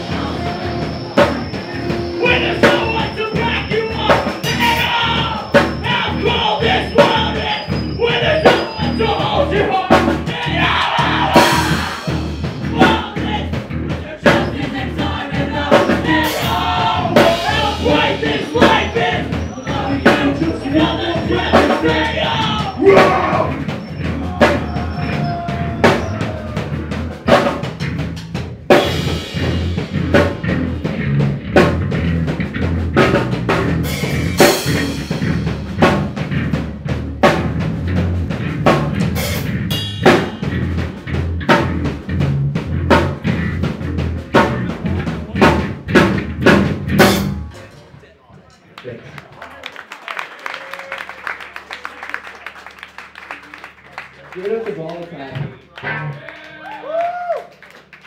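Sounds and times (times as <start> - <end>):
live rock band playing: 0.0 - 47.9, 54.6 - 58.0
pounding drum kit: 0.0 - 47.9
crowd sound: 0.0 - 58.0.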